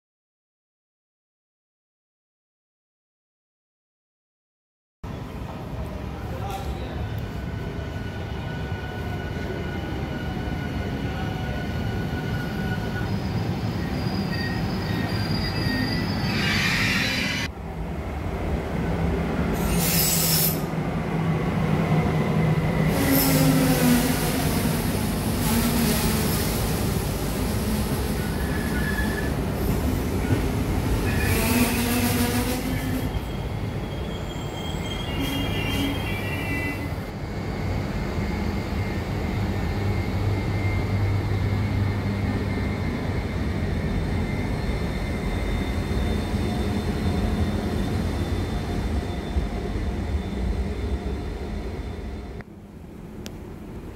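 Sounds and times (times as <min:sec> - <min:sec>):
train rumble and hum: 0:05.1 - 0:53.9
train wheels squealing: 0:06.4 - 0:17.5, 0:19.5 - 0:20.8, 0:22.6 - 0:24.6, 0:25.3 - 0:52.4.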